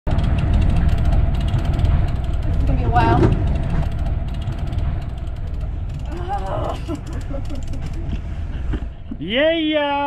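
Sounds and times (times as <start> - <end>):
low rumble of wind and boat: 0.1 - 10.0
fishing reel clicking: 0.2 - 8.1.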